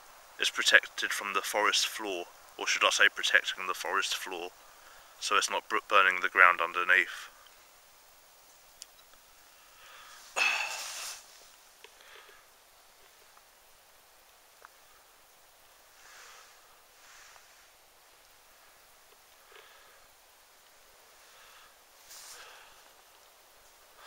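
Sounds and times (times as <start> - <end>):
faint fire log crackles: 0.0 - 24.0
person breathing through nose: 9.6 - 11.3, 16.0 - 17.6.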